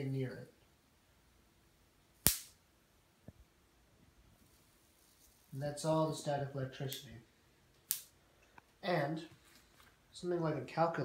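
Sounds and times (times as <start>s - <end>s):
sharp electric snap: 2.2s - 2.6s, 7.8s - 8.2s.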